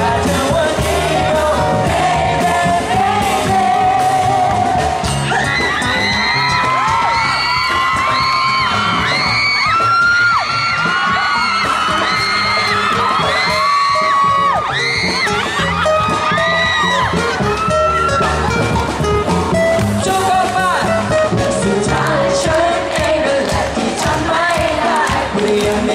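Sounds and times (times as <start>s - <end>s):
live band music through speakers: 0.0s - 25.9s
audience screaming and whooping: 0.2s - 25.9s.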